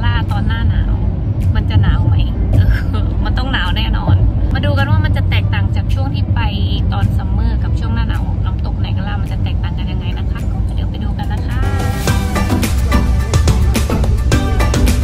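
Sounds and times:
woman talking: 0.0 - 11.8
car driving rumble: 0.0 - 15.0.

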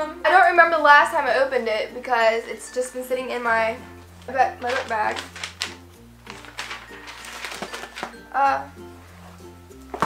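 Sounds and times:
background music sustained notes: 0.0 - 10.0
paper sheets rustling: 4.1 - 8.5.

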